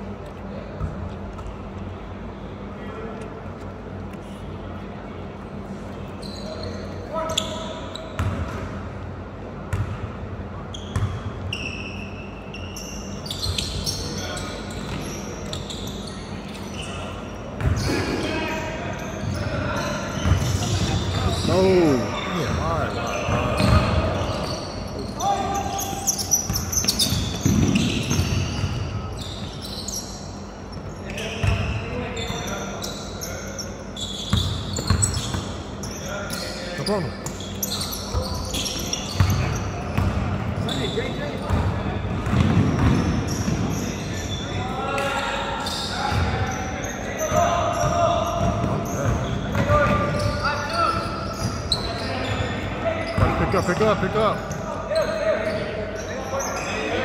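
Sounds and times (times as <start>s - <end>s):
sneaker squeaks: 0.4s - 2.0s, 5.6s - 57.0s
basketball bouncing on hardwood floor: 41.5s - 43.6s.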